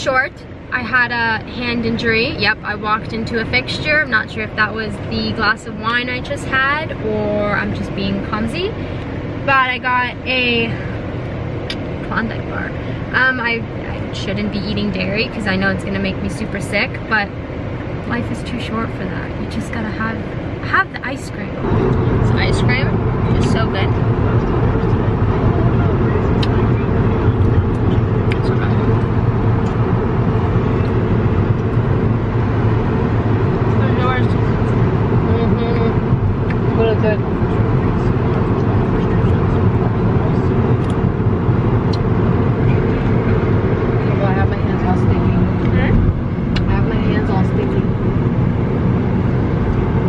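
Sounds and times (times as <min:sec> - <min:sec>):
car road and engine noise: 0:00.0 - 0:50.0.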